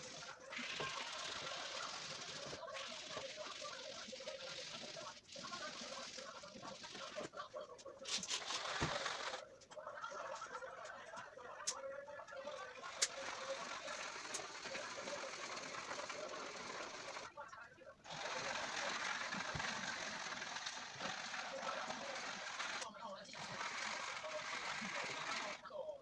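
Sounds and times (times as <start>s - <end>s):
colour stick scribbling on paper: 0.0s - 7.3s.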